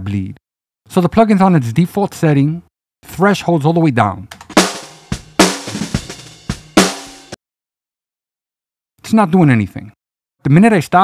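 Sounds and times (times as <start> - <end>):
drum kit bleed: 4.3 - 7.4
snare drum hits: 4.4 - 7.4.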